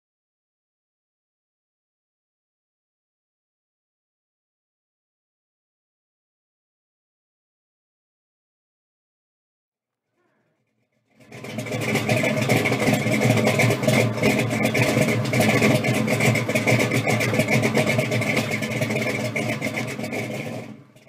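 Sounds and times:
car engine running: 11.1s - 21.0s.

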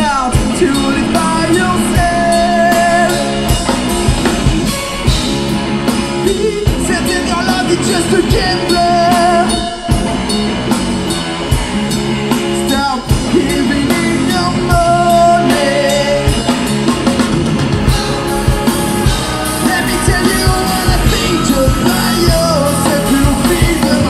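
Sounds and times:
man singing: 0.0s - 5.2s, 6.0s - 10.4s, 12.6s - 16.7s, 18.0s - 24.0s
drum kit playing: 0.0s - 24.0s
electric guitar: 0.0s - 24.0s.

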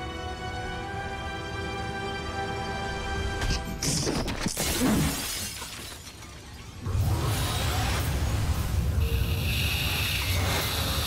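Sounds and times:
glass shards scattering: 3.8s - 6.8s
glass shattering: 3.8s - 6.8s.

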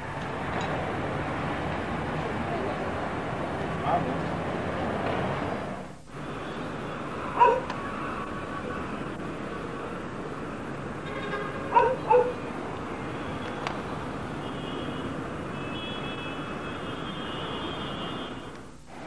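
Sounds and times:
city traffic noise: 0.0s - 19.0s
dog barking: 7.4s - 7.7s, 11.7s - 12.4s.

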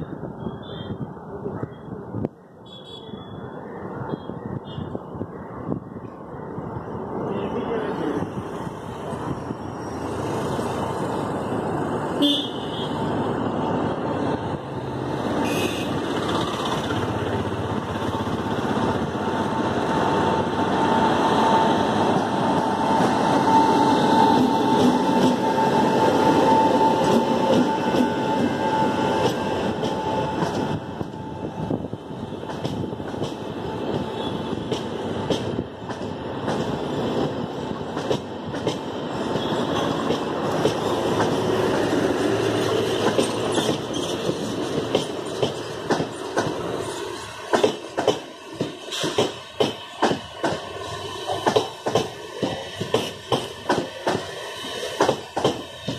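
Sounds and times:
train wheels rumbling on rails: 7.9s - 55.9s.

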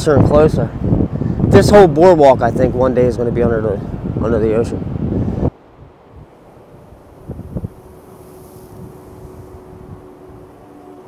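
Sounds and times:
wind rumbling on microphone: 0.0s - 11.0s
faint steady hum: 5.0s - 11.0s.

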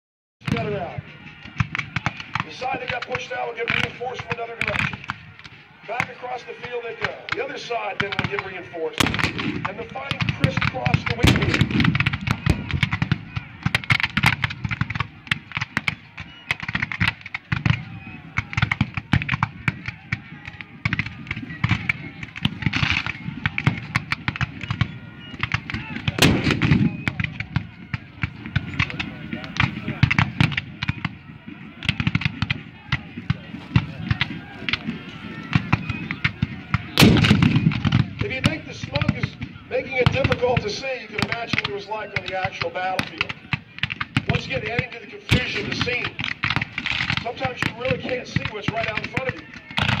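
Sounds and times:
cannon booms: 9.0s - 15.0s, 26.1s - 27.4s, 37.0s - 39.2s
musket volleys crackling: 26.2s - 26.9s, 37.0s - 37.8s.

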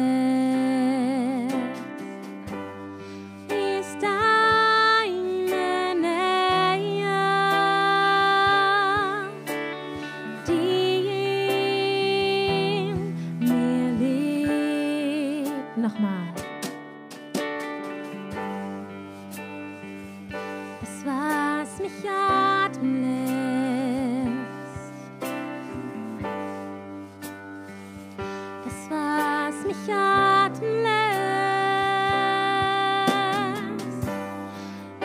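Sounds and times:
instrumental accompaniment: 0.0s - 35.0s
person singing worship song: 3.4s - 16.2s
guitar and keyboard chord: 9.2s - 20.9s.

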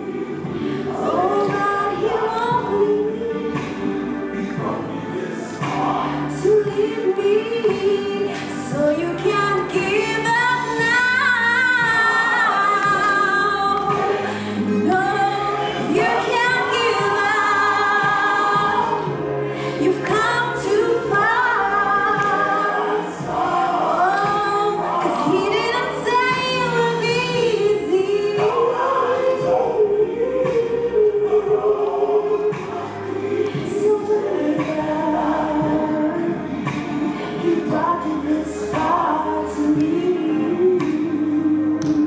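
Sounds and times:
woman singing gospel: 0.0s - 42.0s.

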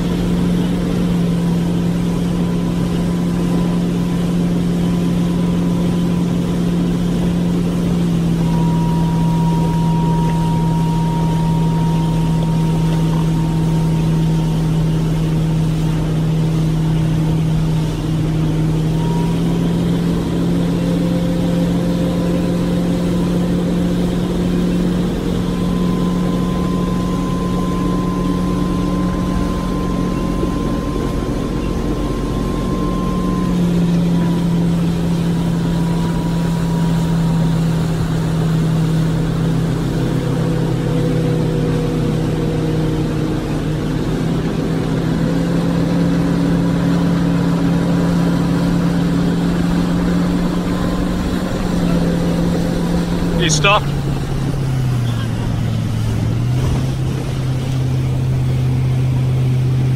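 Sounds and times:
motorboat engine running: 0.0s - 59.9s
wake rushing: 0.0s - 59.9s
wind: 0.0s - 59.9s.

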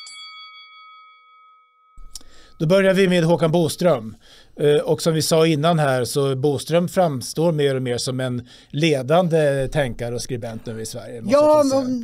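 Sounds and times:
bell-like chime: 0.0s - 3.0s.

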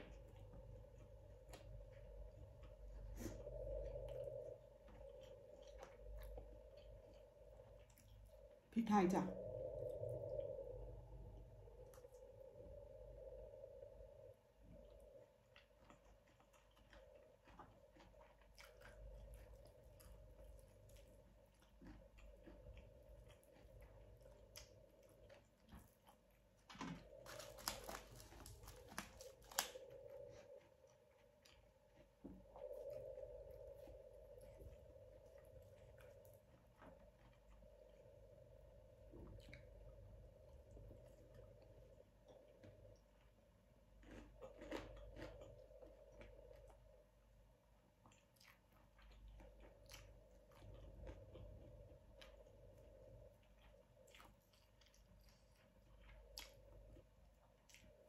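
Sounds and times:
close-up chewing and mouth sounds: 0.0s - 8.8s, 9.4s - 58.0s.

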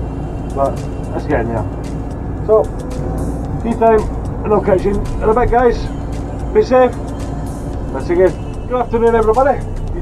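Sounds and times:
excavator diesel engine rumbling: 0.0s - 10.0s
man talking: 0.5s - 1.7s, 2.4s - 2.7s, 3.6s - 5.9s, 6.5s - 7.0s, 7.9s - 10.0s.

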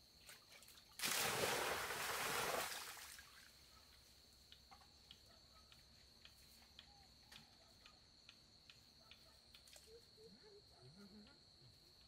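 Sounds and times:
insect ticks: 3.8s - 10.1s.

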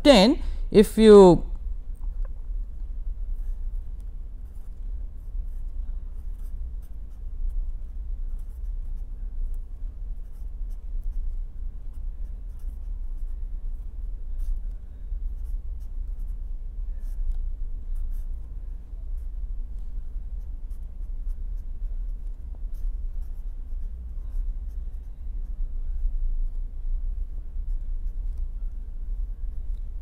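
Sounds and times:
steady low hum: 0.0s - 30.0s
pen scratching on paper: 3.4s - 9.1s, 9.7s - 14.7s, 15.4s - 16.4s, 18.0s - 18.5s, 20.4s - 25.1s.

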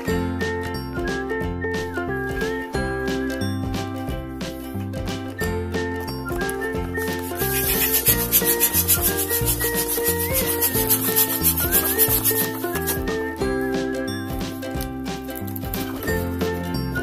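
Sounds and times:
light background music: 0.0s - 17.0s
electric balloon pump hissing: 7.0s - 13.0s.

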